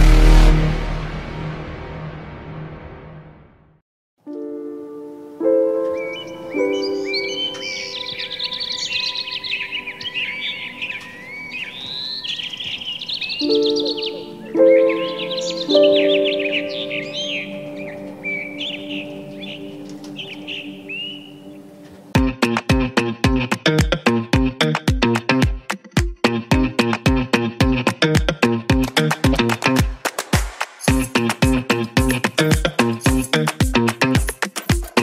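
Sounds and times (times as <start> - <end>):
soft music of held chords: 4.2 - 11.8, 13.4 - 29.6
birds chirping and singing: 5.9 - 22.1.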